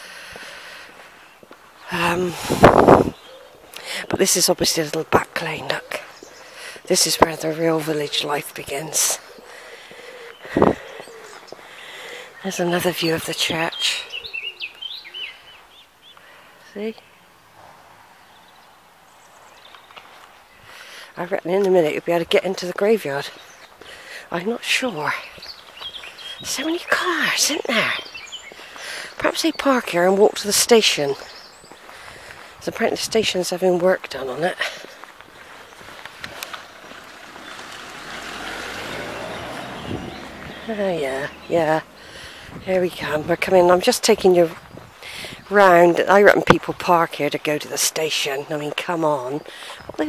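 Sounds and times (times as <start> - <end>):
songbird singing: 0.0 - 50.0
road vehicle passing: 17.2 - 20.5, 35.5 - 44.6.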